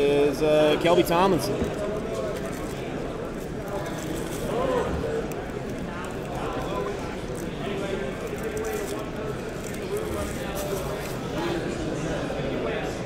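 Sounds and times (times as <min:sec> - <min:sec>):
chatter of voices in a hall: 0:00.0 - 0:13.0
trading cards and wrappers rustling: 0:01.3 - 0:11.5.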